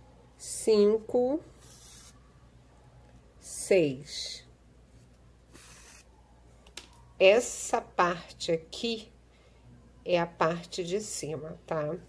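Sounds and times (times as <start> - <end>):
thread drawn through ribbon: 1.6 - 2.2.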